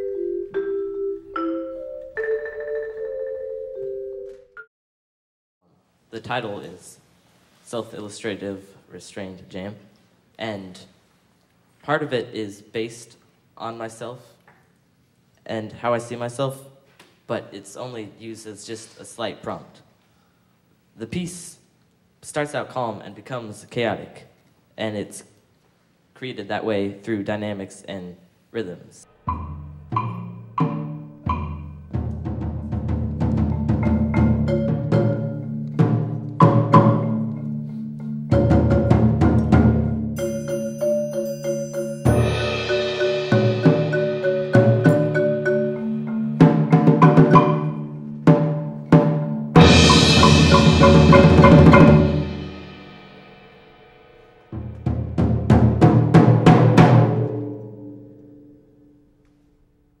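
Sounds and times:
marimba and mallet percussion: 0:00.0 - 0:04.6, 0:29.2 - 0:53.0
drums and cymbals: 0:29.3 - 0:37.2, 0:37.8 - 0:57.4
high ringing metallic tones: 0:40.2 - 0:46.4.

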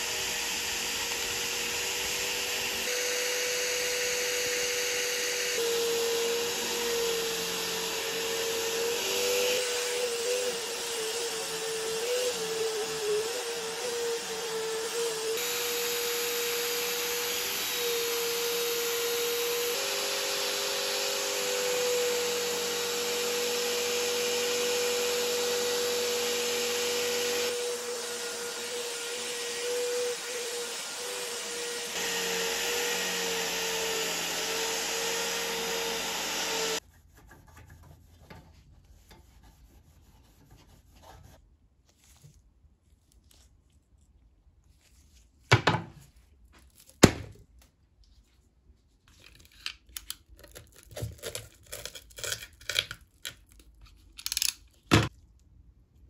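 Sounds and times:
drill motor whine: 0:00.0 - 0:36.8
metal being buffed: 0:00.0 - 0:36.8.

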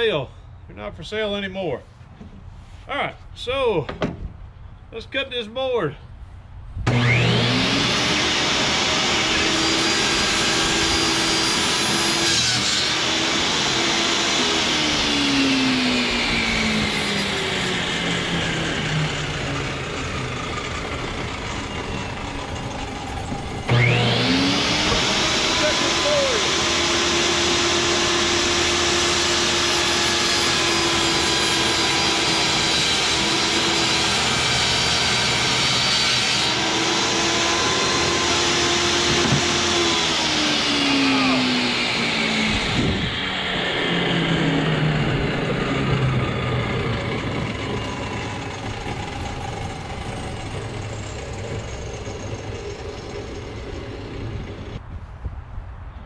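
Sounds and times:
table saw motor whining: 0:06.8 - 0:54.8
saw cutting board: 0:06.9 - 0:54.8.

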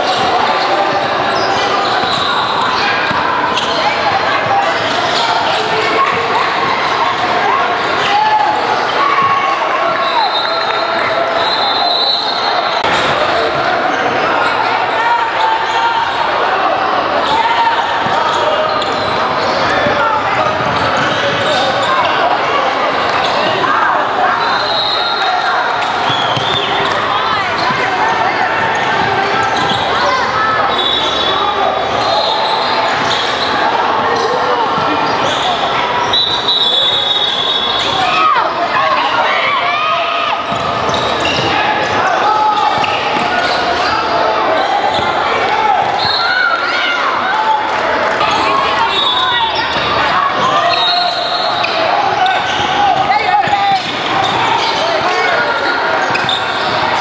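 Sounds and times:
players and spectators calling out: 0:00.0 - 0:57.0
sneaker squeaks on court: 0:00.1 - 0:06.9, 0:25.7 - 0:30.1, 0:30.7 - 0:38.0, 0:40.4 - 0:45.2, 0:48.3 - 0:57.0.

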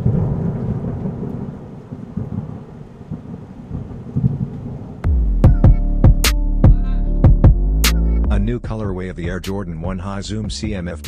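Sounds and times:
electronic music with punchy beat: 0:05.1 - 0:11.0.

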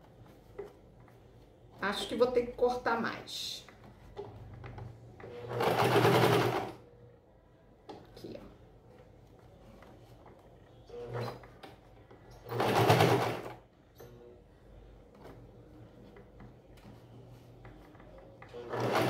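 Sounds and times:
sewing machine stitching: 0:05.2 - 0:06.8, 0:10.9 - 0:11.6, 0:12.3 - 0:13.6, 0:18.5 - 0:19.0.

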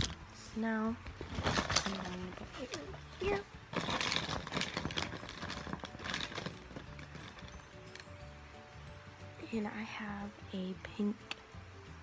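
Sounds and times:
faint background music: 0:00.0 - 0:12.0
plastic markers rattling: 0:01.2 - 0:02.9, 0:03.7 - 0:08.1.

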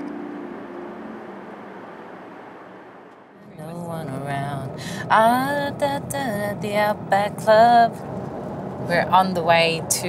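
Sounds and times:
music: 0:00.0 - 0:01.6
aircraft cabin drone: 0:00.0 - 0:10.0.

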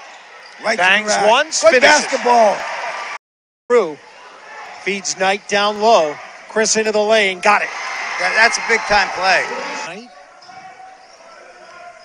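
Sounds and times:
murmur of crowd voices: 0:03.8 - 0:12.0.

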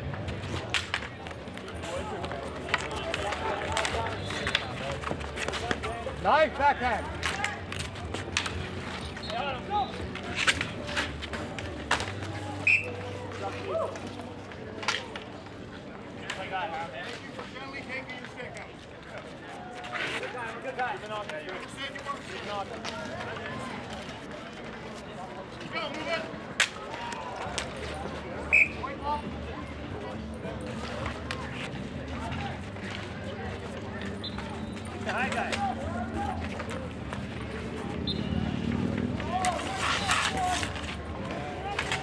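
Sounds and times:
hockey sticks clacking on asphalt: 0:00.0 - 0:42.0
indistinct chatter: 0:00.0 - 0:42.0.

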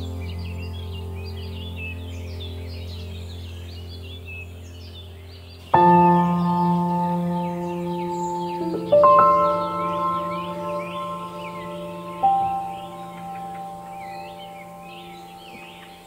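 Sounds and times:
birds chirping: 0:00.0 - 0:16.0
bell-like note ringing: 0:05.8 - 0:16.0
low held tone: 0:05.8 - 0:16.0.

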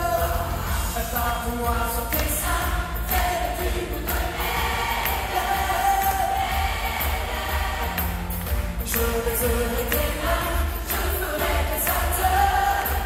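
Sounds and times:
large choir singing: 0:00.0 - 0:13.0
live band with heavy bass beat: 0:00.0 - 0:13.0.

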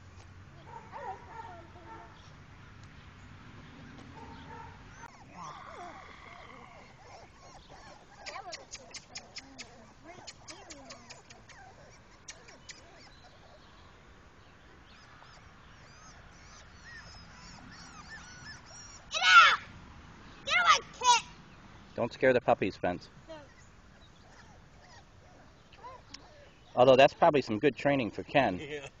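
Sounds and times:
puppies whimpering and yipping: 0:03.9 - 0:13.7, 0:14.8 - 0:19.2, 0:23.4 - 0:27.3
child shouting: 0:19.1 - 0:19.7, 0:20.4 - 0:21.4.

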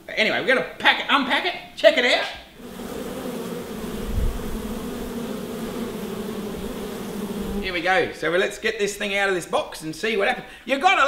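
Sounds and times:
bees buzzing: 0:02.6 - 0:08.1.

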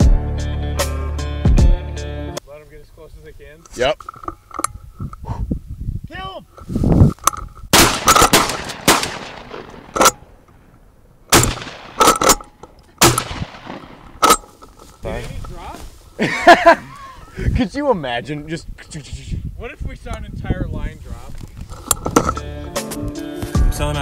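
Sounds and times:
shotgun shots with echo: 0:07.7 - 0:10.2, 0:11.3 - 0:12.4, 0:13.0 - 0:14.2.

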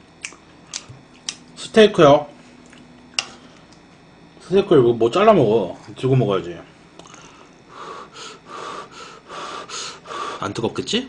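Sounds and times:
person blowing breathy puffs: 0:07.1 - 0:10.4.

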